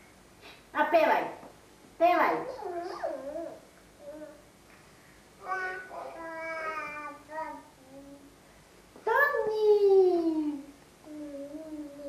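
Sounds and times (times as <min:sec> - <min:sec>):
toddler vocalizing: 0:02.4 - 0:04.4, 0:05.4 - 0:08.3, 0:11.0 - 0:12.0.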